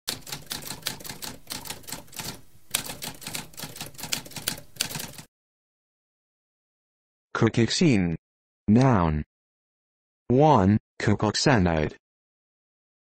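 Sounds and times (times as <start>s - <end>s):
typewriter keys striking: 0.1s - 5.3s.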